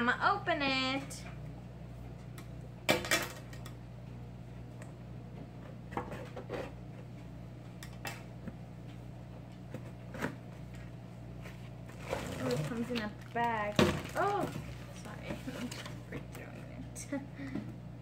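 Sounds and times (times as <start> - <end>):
steady low hum: 0.0 - 18.0
plastic bag rustling: 11.8 - 16.0.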